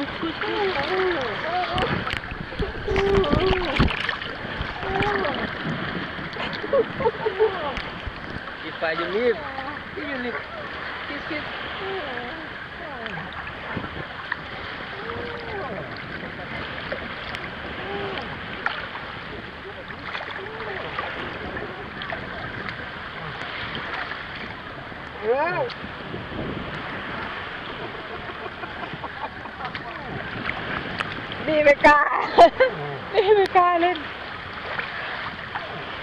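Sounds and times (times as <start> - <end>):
faint voices: 0.0 - 3.9, 14.7 - 24.3, 26.9 - 30.6
water splashes and drips on microphone: 0.0 - 5.7
sea water sloshing and lapping: 0.0 - 36.0
wind on microphone: 0.0 - 36.0.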